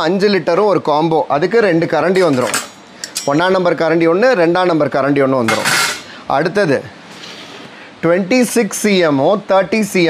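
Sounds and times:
steel utensils clinking and scraping: 2.2 - 3.4, 5.5 - 6.1.

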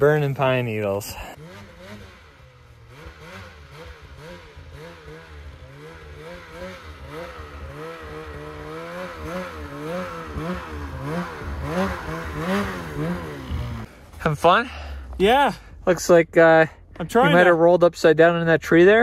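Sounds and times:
snowmobile engine revving: 0.0 - 19.0.

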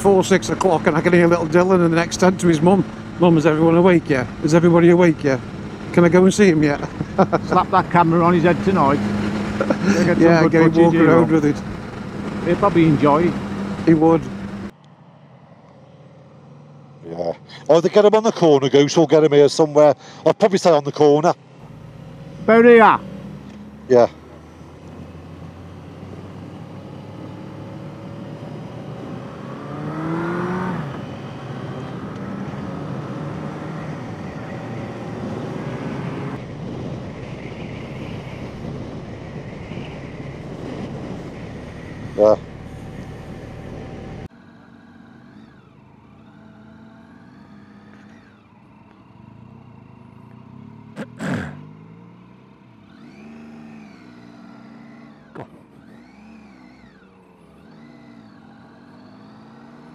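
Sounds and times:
motorcycle engine revving: 0.0 - 14.8, 21.0 - 59.9
wind noise: 34.6 - 42.0.

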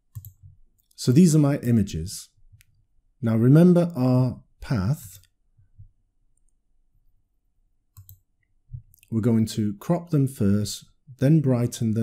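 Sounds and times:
computer mouse clicks: 0.1 - 1.0, 7.9 - 9.1.

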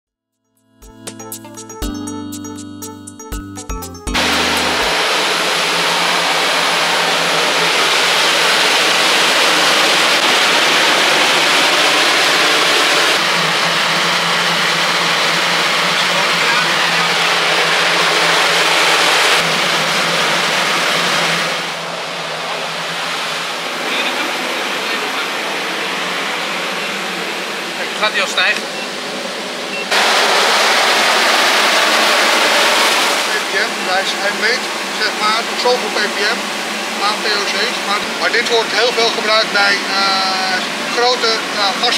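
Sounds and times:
loud rushing air noise: 4.2 - 27.9, 28.9 - 38.7.

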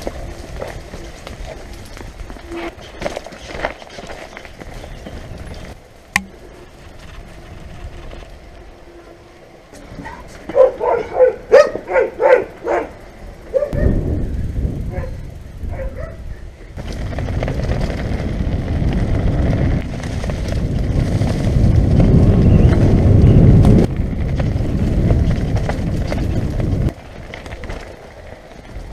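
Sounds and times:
tyres on trail: 0.0 - 28.9
dog barking: 10.0 - 14.0, 14.9 - 16.2
wind on microphone: 13.5 - 27.8.

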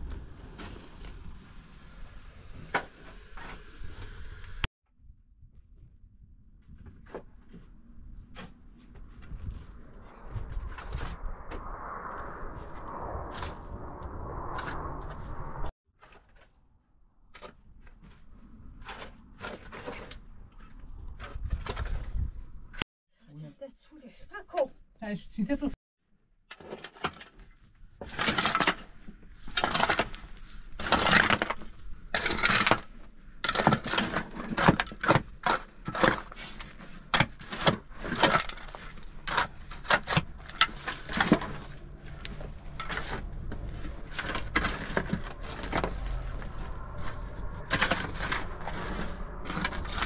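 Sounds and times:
shovel scraping stony soil: 28.0 - 50.0.

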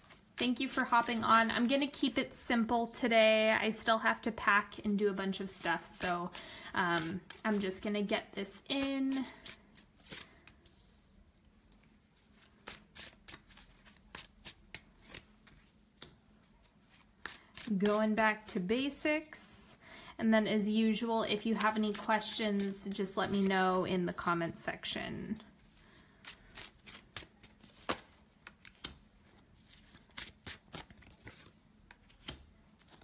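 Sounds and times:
cards shuffling and slapping: 0.0 - 1.9, 7.0 - 10.6, 11.7 - 18.2, 21.5 - 23.5, 26.2 - 33.0.

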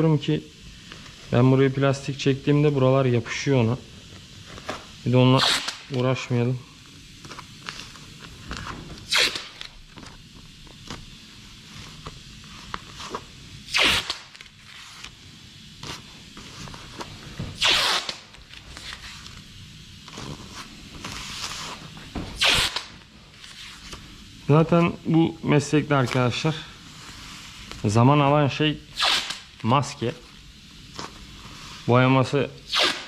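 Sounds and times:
masking paper crinkling: 4.0 - 24.2, 29.2 - 32.0
masking tape pulled off roll: 4.2 - 6.0, 7.2 - 11.2, 11.8 - 15.2, 15.8 - 24.0, 28.9 - 29.6, 32.7 - 33.0
small handling noises: 6.8 - 13.6, 29.6 - 32.0.

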